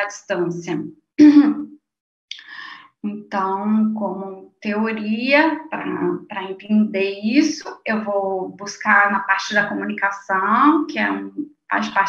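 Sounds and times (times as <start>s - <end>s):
woman's voiced sound: 0.0s - 1.6s, 2.3s - 12.0s
woman breathing: 2.4s - 3.0s.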